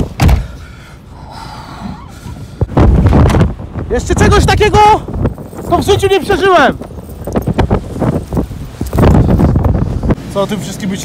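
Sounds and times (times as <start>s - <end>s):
blizzard wind buffeting microphone: 0.0s - 11.0s.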